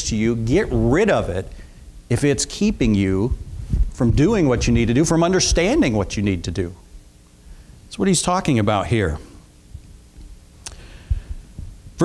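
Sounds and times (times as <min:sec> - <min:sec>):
soft low thuds: 0:03.1 - 0:05.9, 0:11.0 - 0:12.0.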